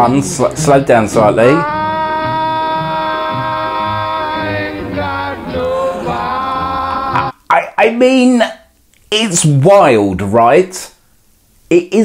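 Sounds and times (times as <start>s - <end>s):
man singing old jazz recording: 0.0s - 7.3s.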